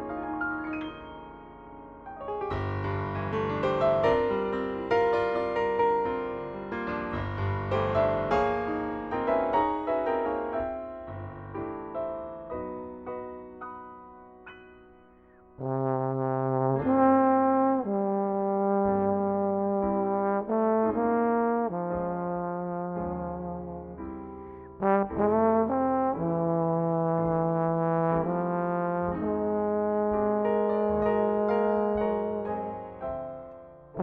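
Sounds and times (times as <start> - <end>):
piano accompaniment: 0.0 - 34.0
jazz trombone melody: 15.6 - 24.1, 24.8 - 33.4.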